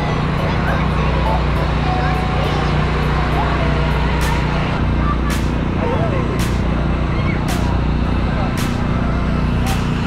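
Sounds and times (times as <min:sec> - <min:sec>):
children's voices: 0:00.0 - 0:07.8
crowd chatter: 0:00.0 - 0:10.0
large truck on road: 0:00.0 - 0:10.0
road traffic hum: 0:00.0 - 0:10.0.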